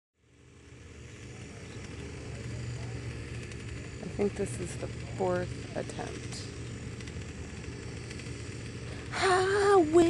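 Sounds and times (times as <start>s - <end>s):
paramotor engine idling: 0.3s - 10.0s.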